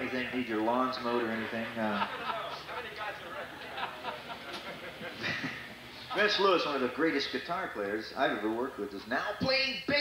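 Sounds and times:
laughter: 0:01.4 - 0:06.7.

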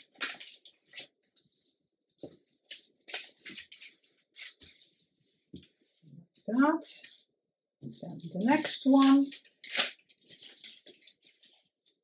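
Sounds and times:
paper rustling: 0:00.0 - 0:06.2, 0:06.9 - 0:12.0.

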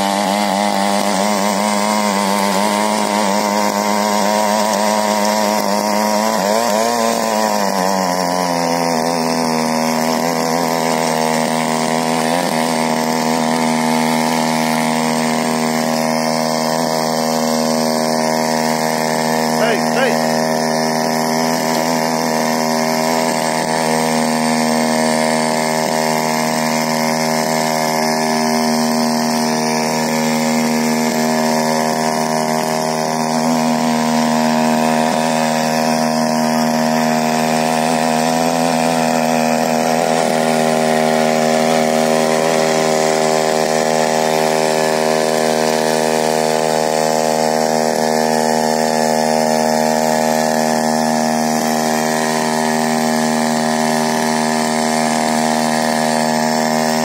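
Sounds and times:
small petrol engine running: 0:00.0 - 0:57.0
tines churning dry soil: 0:00.0 - 0:57.0.

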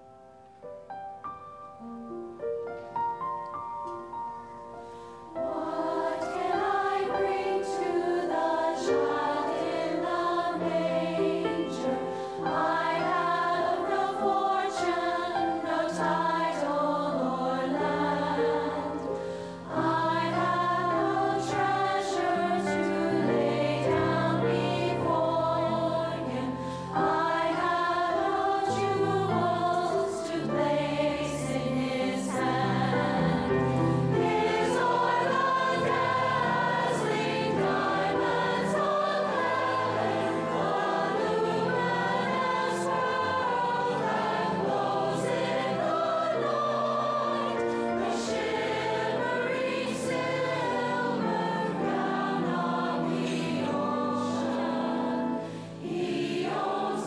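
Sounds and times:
choir singing: 0:04.8 - 0:57.0.

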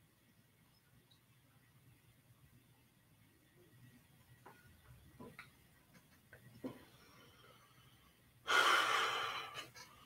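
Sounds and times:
man breathing out: 0:08.5 - 0:09.8.

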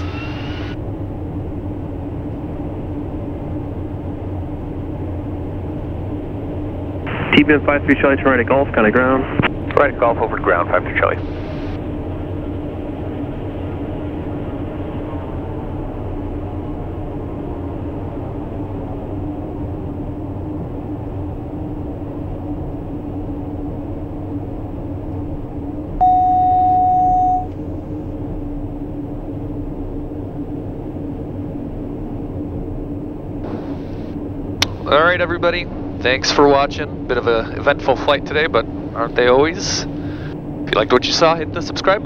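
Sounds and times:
turboprop engine droning: 0:00.0 - 0:42.0
loud electronic beep: 0:26.0 - 0:27.5.

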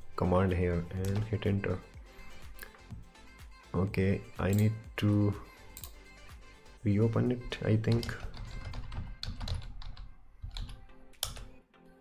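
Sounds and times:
soft background music: 0:00.0 - 0:12.0
computer keyboard typing: 0:01.0 - 0:01.3, 0:05.7 - 0:06.0, 0:07.8 - 0:11.6.

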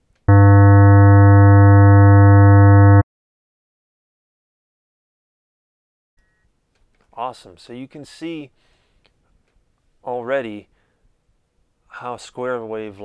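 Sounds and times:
steady square wave tone: 0:00.3 - 0:03.0.

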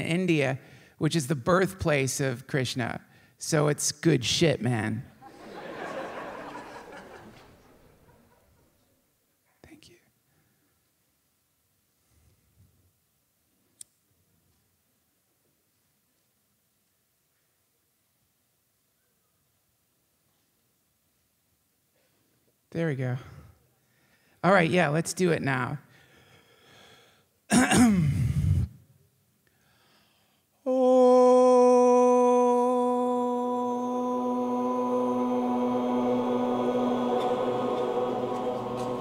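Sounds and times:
person whispering: 0:09.5 - 0:10.2
man clearing his throat: 0:27.5 - 0:28.7.

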